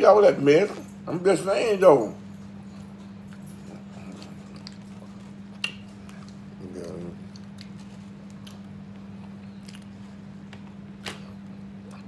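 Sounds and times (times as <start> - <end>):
eating sounds: 2.6 - 12.0.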